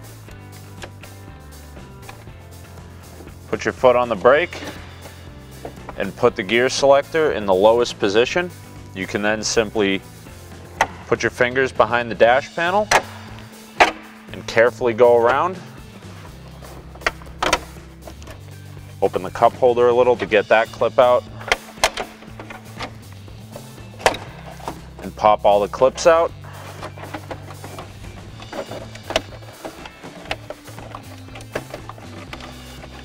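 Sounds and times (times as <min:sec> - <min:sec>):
quiet background music: 0:00.0 - 0:33.0
plastic clicks and knocks: 0:26.7 - 0:33.0.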